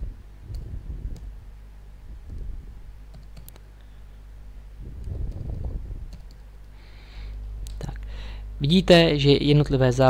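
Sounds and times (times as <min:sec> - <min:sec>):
keyboard and mouse clicks: 0:03.1 - 0:03.7, 0:05.0 - 0:06.8.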